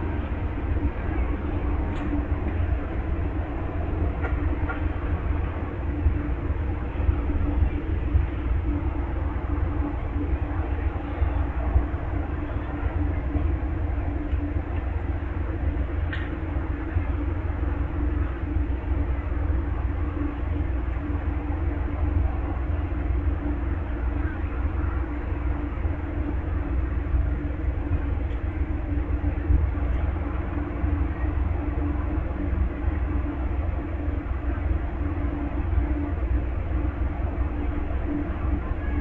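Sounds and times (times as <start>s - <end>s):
diesel locomotives idling: 0.0s - 39.0s.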